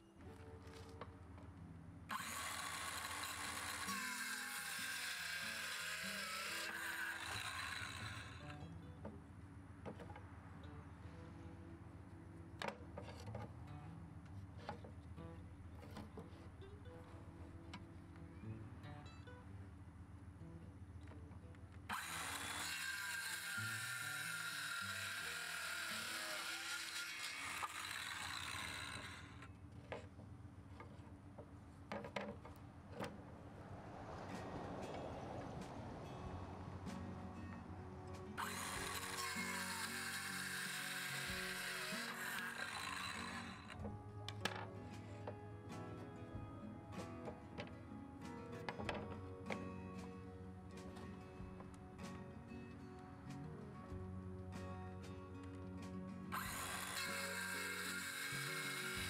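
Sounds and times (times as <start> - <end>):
circular saw cutting board: 2.1 - 8.6, 21.9 - 30.0, 38.4 - 44.6, 56.3 - 59.0
soft background music: 7.6 - 21.4, 33.6 - 59.0.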